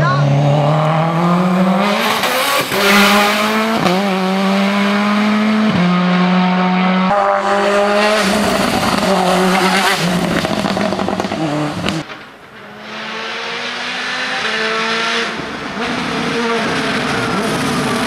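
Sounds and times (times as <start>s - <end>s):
race car engine at high revs: 0.0s - 18.0s.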